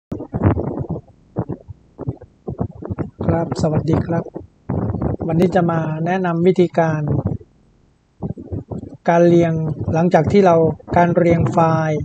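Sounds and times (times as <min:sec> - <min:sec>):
man speaking: 0:03.2 - 0:04.3, 0:05.2 - 0:07.4, 0:09.0 - 0:12.0.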